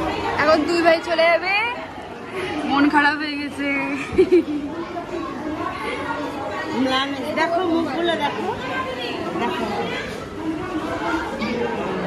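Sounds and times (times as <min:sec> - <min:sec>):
people chattering in echoing hall: 0:00.0 - 0:12.0.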